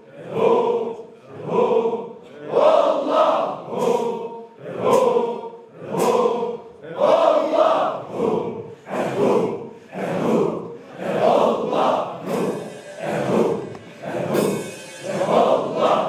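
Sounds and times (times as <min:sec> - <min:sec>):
men chanting in unison: 0:00.0 - 0:16.0
hand cymbals clashing: 0:12.2 - 0:16.0.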